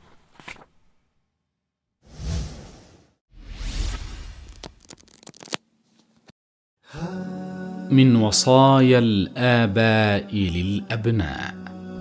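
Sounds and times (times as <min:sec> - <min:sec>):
whoosh sound effects: 0:02.1 - 0:04.6.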